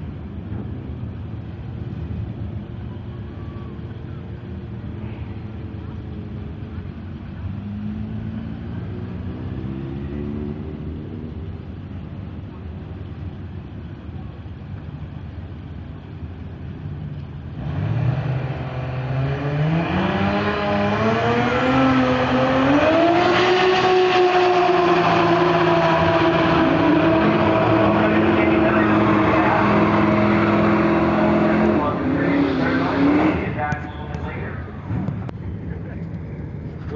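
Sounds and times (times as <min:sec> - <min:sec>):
turbocharged car engine revving: 0:17.5 - 0:36.1.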